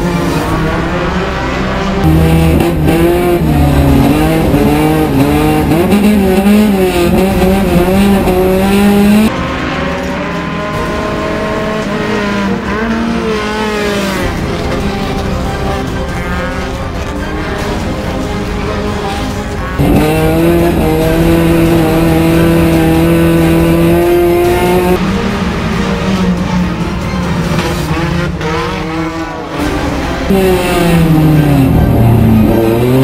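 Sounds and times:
race car engines revving: 0.0 - 33.0.

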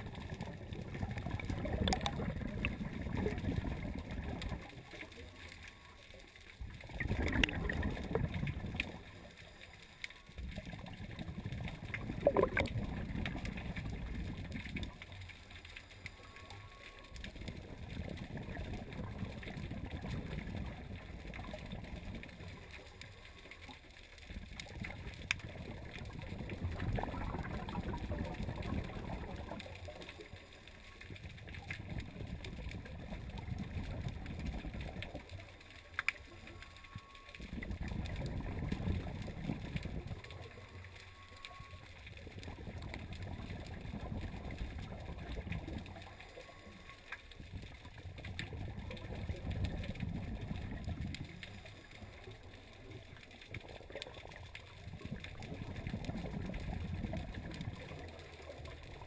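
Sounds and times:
underwater exhaust bubbles: 0.0 - 59.0.

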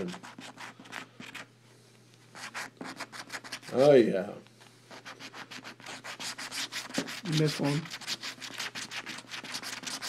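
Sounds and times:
coin scratching lottery ticket: 2.4 - 3.8, 4.9 - 10.0.

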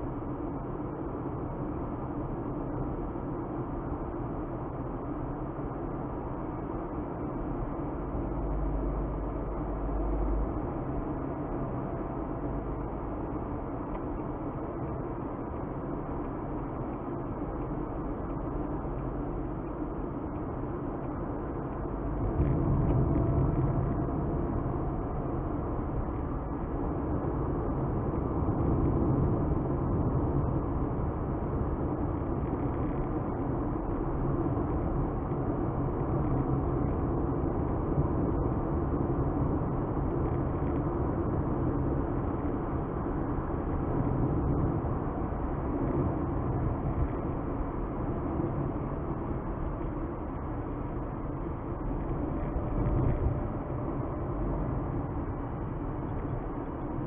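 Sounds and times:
car road and engine noise: 0.0 - 57.0.

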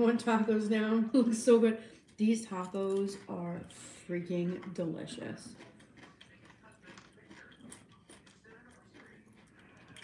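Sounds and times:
faint indistinct voices: 2.5 - 10.0.

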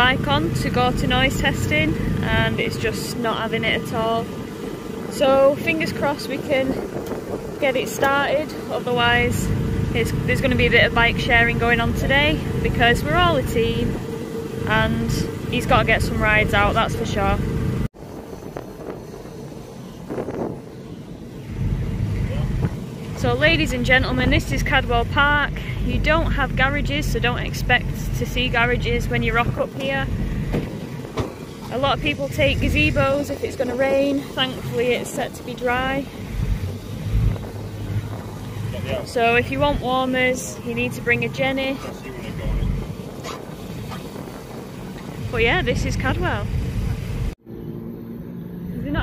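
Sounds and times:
wind rumbling on microphone: 0.0 - 47.4
faint vehicle noise: 0.0 - 49.0.

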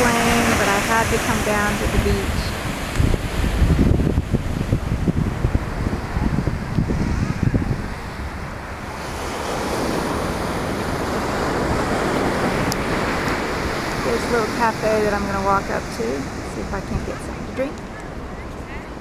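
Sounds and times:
surf breaking on beach: 0.0 - 19.0
wind buffeting microphone: 0.0 - 19.0.

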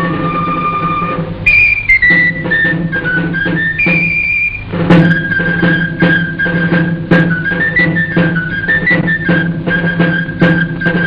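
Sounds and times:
high pipe melody: 0.0 - 11.0
low accompaniment: 0.0 - 11.0
sharp drum stroke: 0.0 - 11.0.

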